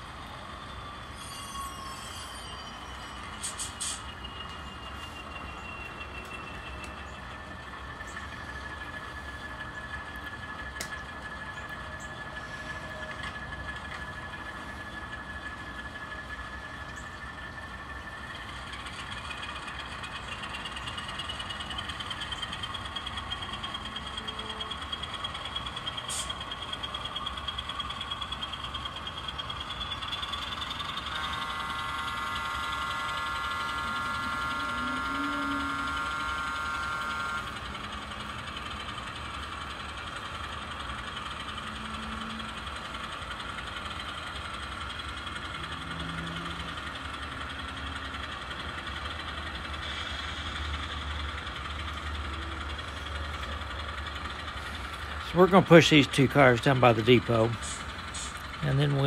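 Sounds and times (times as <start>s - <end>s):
model train engine sound from speaker: 0.0s - 59.0s
whine rising in pitch: 30.4s - 37.7s
model train horn: 31.1s - 37.6s.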